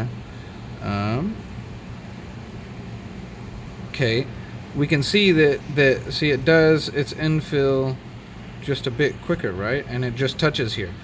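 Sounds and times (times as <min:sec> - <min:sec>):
machine hum and hiss: 0:00.0 - 0:11.0.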